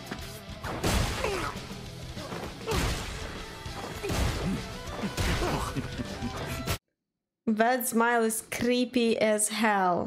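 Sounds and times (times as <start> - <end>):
background music: 0.0 - 6.8.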